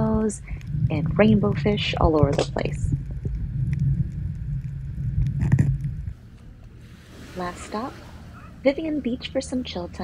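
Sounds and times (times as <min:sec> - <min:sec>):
underwater rumble and crackle: 0:00.0 - 0:07.2.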